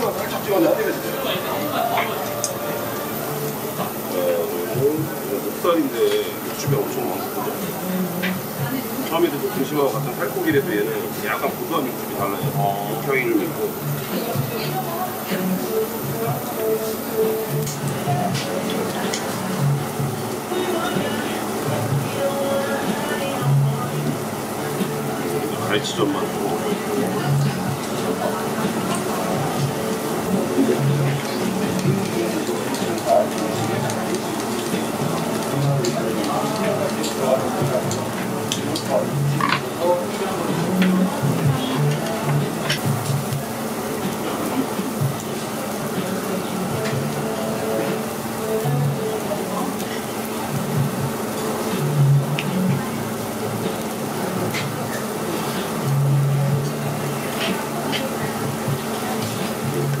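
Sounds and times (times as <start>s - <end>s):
background chatter: 0.0s - 60.0s
music: 0.0s - 60.0s
pork sizzling on a grill: 0.0s - 60.0s.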